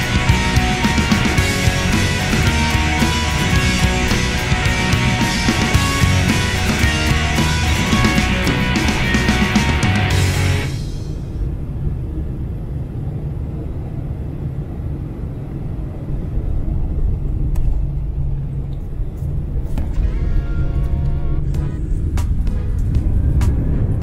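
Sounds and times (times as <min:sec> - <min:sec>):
jet airliner cabin rumble: 0:00.0 - 0:24.0.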